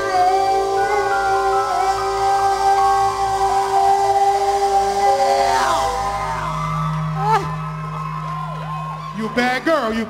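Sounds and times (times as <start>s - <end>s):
soul band holding a chord: 0.0s - 9.4s.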